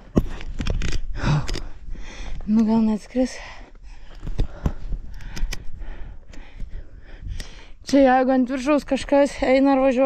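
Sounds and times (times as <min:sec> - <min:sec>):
camera handling clicks and rubs: 0:00.2 - 0:01.7
soft breathing: 0:00.2 - 0:02.5, 0:03.1 - 0:07.8.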